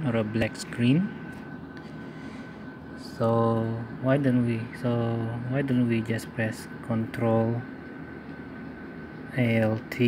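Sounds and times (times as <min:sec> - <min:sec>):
faint high whine: 0:00.0 - 0:10.0
steady background whir: 0:00.0 - 0:10.0.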